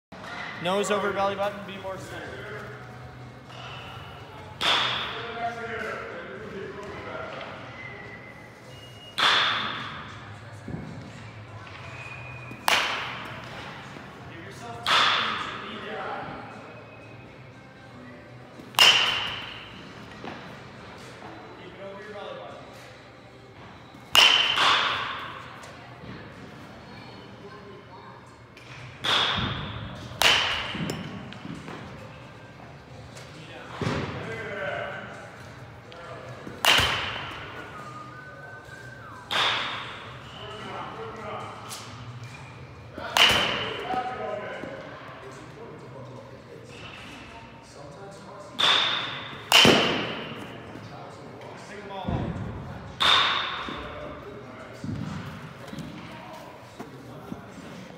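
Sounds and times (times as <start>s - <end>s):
baseball bat striking ball: 4.6s - 5.2s, 12.6s - 13.3s, 18.7s - 19.7s, 24.1s - 25.4s, 29.0s - 31.1s, 36.5s - 37.4s, 43.1s - 43.9s, 48.6s - 50.5s, 53.0s - 53.8s.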